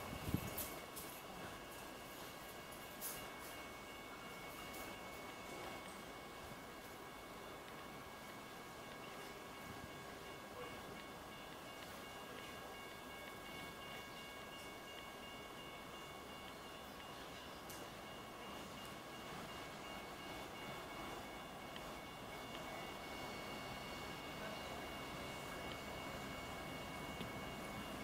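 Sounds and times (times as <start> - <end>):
distant train rumble: 0.0 - 28.0.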